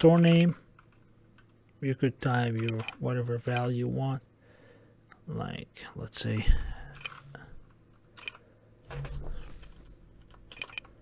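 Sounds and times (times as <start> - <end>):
keyboard keystrokes: 10.3 - 10.9.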